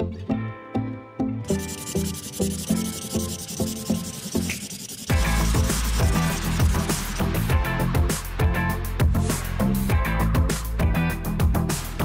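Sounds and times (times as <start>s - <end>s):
marker scratching on paper: 1.5s - 7.5s.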